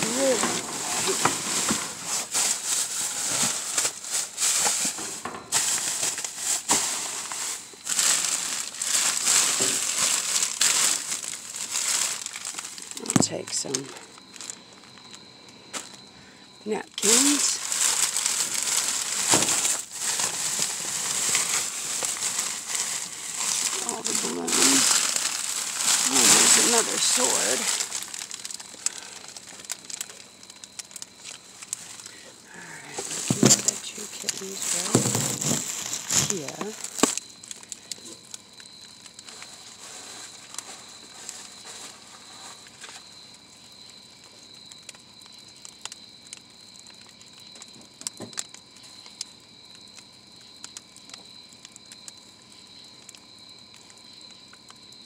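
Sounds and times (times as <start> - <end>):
faint high whine: 0.0 - 44.8
plastic and bubble wrap crinkling: 0.0 - 49.3.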